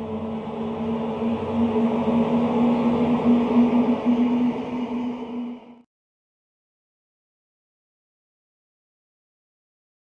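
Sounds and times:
low synthesized drone: 0.0s - 5.9s.

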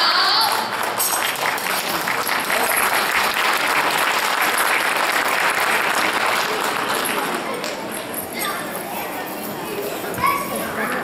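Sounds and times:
children chattering: 5.8s - 11.0s.

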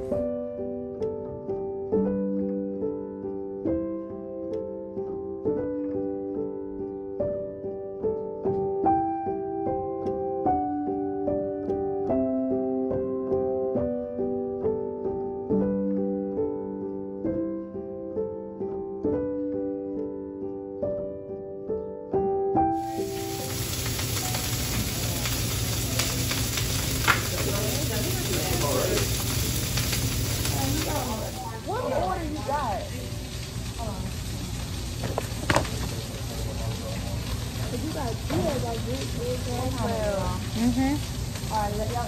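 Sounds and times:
hash browns sizzling on griddle: 0.0s - 0.2s, 22.7s - 42.0s
piano notes: 0.0s - 42.0s
people talking: 27.0s - 29.2s, 30.4s - 33.2s, 33.8s - 34.1s, 35.9s - 42.0s.

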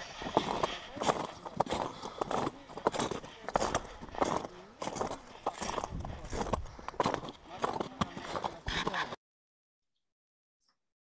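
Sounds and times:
footsteps crunching on ice: 0.0s - 9.2s.

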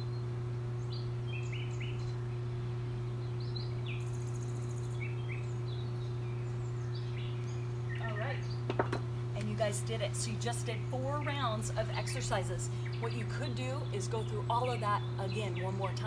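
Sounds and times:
birds chirping: 0.0s - 16.0s
steady low hum: 0.0s - 16.0s.

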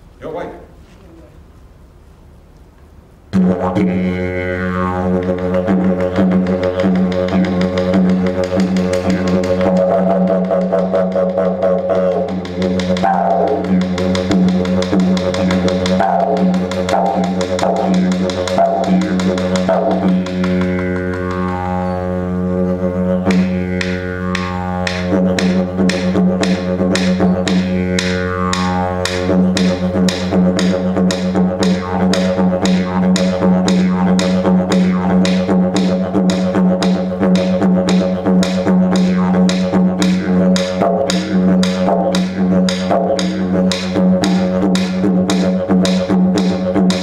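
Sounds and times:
didgeridoo drone: 3.3s - 47.0s.

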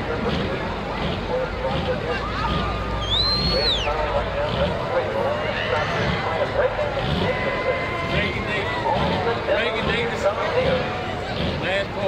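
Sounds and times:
crowd chatter: 0.0s - 12.0s
diesel engine idling: 0.0s - 12.0s
high whistle: 3.0s - 3.9s.

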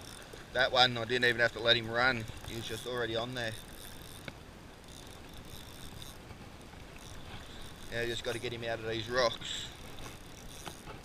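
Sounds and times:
fishing reel click: 0.0s - 11.0s
fishing reel whirring: 0.0s - 11.0s.

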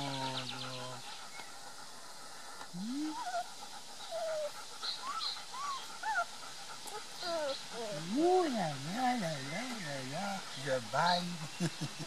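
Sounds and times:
puppies whimpering and squeaking: 3.0s - 11.5s.

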